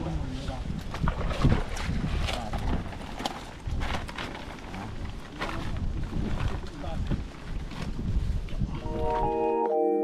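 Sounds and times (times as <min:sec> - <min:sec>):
wind buffeting microphone: 0:00.0 - 0:09.3.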